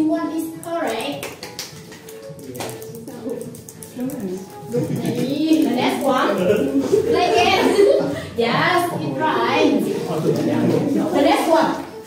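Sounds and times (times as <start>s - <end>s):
background music: 0.0s - 12.0s
group chatter and laughter: 2.2s - 12.0s.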